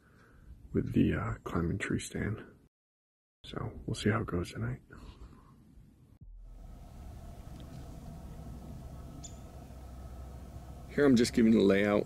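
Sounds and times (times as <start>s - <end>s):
low hum: 6.2s - 12.0s
faint high-pitched chirp: 9.0s - 10.2s.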